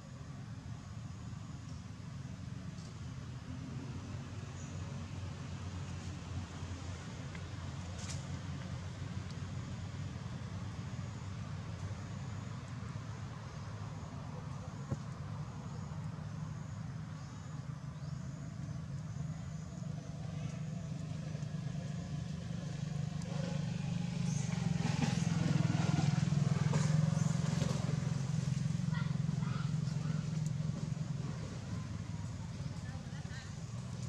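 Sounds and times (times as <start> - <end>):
vehicle engine humming: 0.0 - 34.0.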